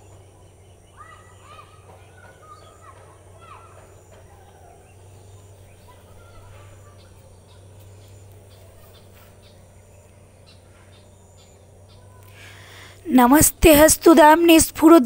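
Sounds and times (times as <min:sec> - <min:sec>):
distant bird calls: 0:00.0 - 0:15.0
low hum: 0:00.0 - 0:15.0.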